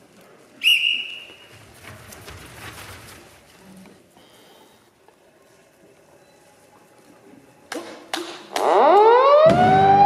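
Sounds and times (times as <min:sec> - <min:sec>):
siren wail: 0:08.6 - 0:10.0.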